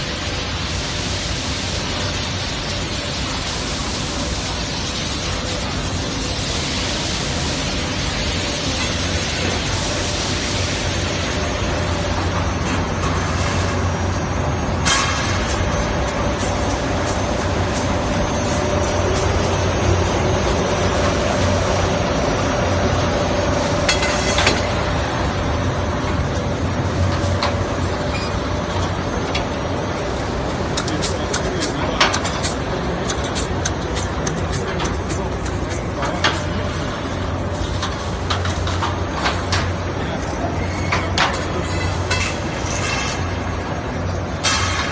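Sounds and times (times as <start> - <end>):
furnace production line hum: 0.0 - 44.9.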